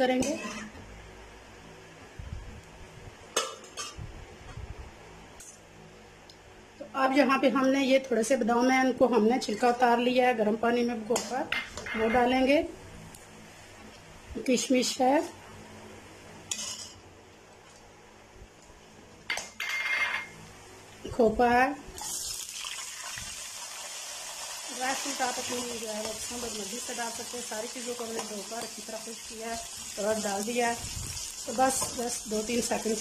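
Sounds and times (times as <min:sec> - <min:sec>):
metal spoon stirring spices in pan: 0:31.2 - 0:32.8.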